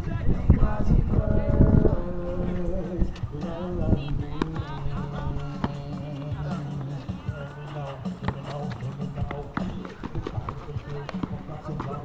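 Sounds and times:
background voices: 0.0 - 12.0
basketball bouncing on asphalt: 4.2 - 7.4, 8.0 - 12.0.

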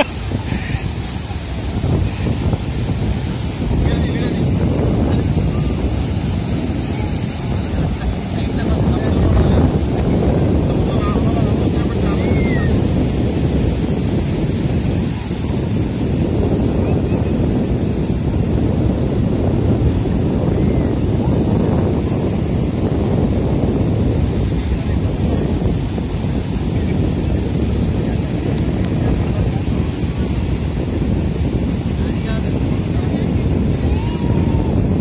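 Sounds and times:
waves breaking on beach: 0.0 - 35.0
wind rumble on microphone: 0.0 - 35.0.

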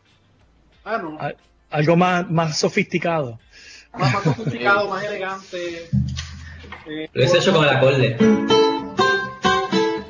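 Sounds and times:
acoustic guitar plucked notes: 5.9 - 10.0.

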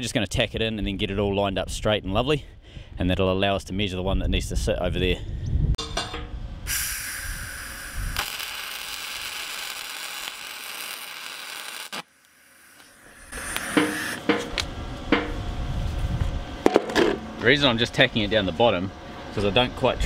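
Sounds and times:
welding arc crackling hiss: 6.7 - 14.2.

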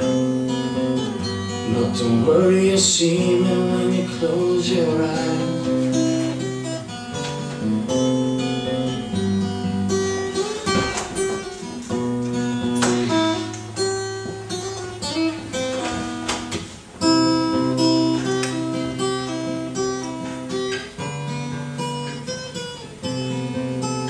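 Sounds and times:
acoustic guitar strummed and picked: 0.0 - 24.0.

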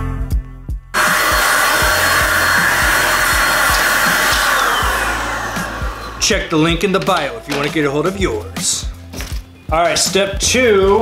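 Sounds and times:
power tool whirring: 1.0 - 7.8.

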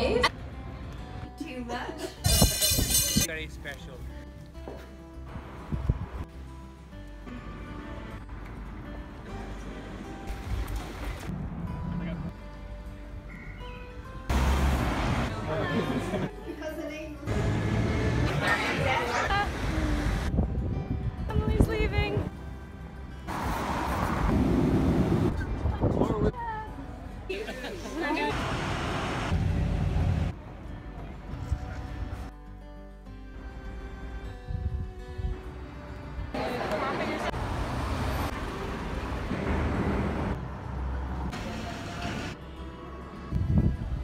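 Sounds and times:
background music: 0.0 - 24.8, 25.4 - 28.4, 29.3 - 44.0
wind or traffic noise: 5.2 - 6.3, 17.3 - 26.5, 28.3 - 31.7, 34.4 - 42.4, 43.0 - 44.0
cars driving past: 14.3 - 15.5, 17.3 - 20.3, 23.3 - 25.4, 28.3 - 30.4, 36.2 - 42.4
people's voices: 15.2 - 20.3, 36.3 - 37.5
laughter: 15.7 - 16.7, 27.3 - 28.3.

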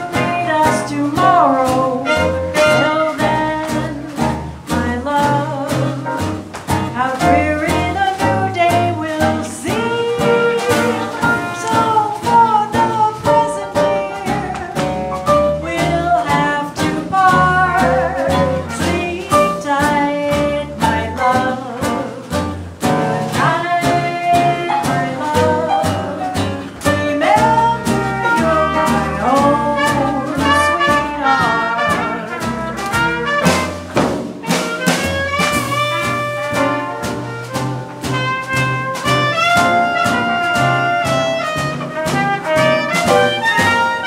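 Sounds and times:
swing band playing: 0.0 - 44.0.

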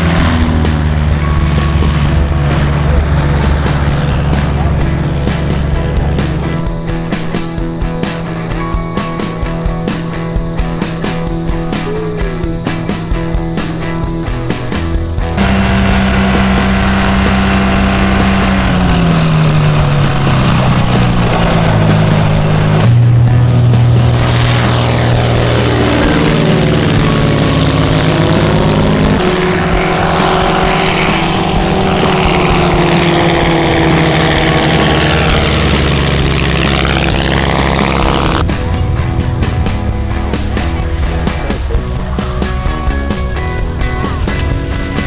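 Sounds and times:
plane passing low overhead: 0.0 - 45.0
propeller plane engines running: 0.0 - 45.0.

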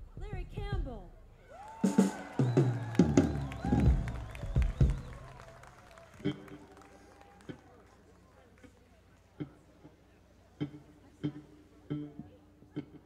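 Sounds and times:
low plucked notes ringing: 10.6 - 13.0.

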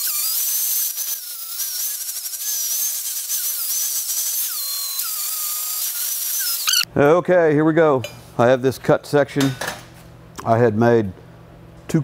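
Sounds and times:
angle grinder grinding steel: 0.0 - 6.9.

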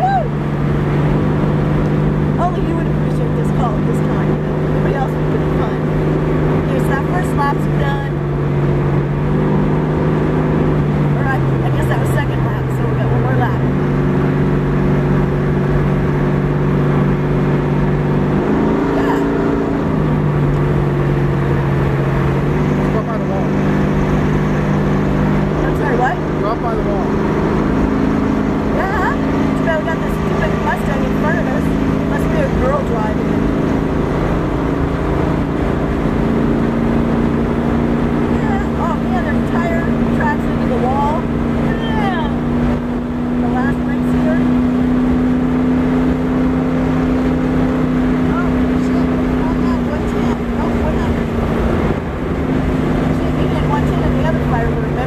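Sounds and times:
car engine at speed: 0.0 - 55.0
wind and road noise: 0.0 - 55.0.

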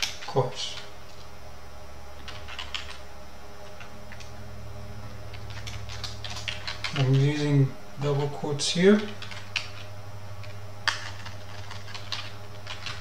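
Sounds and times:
steady low hum: 0.0 - 13.0
typing on computer keyboard: 2.2 - 3.0, 5.3 - 7.2, 9.0 - 9.9, 10.9 - 13.0.

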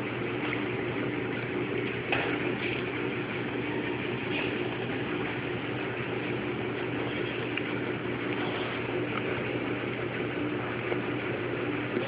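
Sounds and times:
machine droning: 0.0 - 12.0.

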